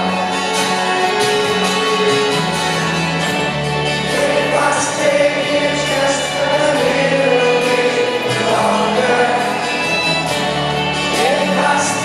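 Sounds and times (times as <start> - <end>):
live band playing: 0.0 - 12.0
upright double bass: 0.0 - 12.0.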